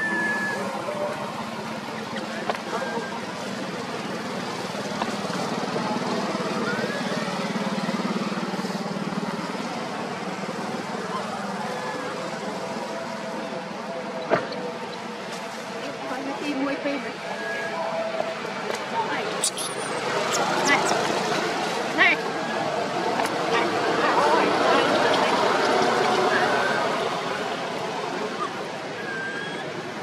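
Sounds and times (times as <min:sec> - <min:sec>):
vehicle engine running: 0:00.5 - 0:17.2.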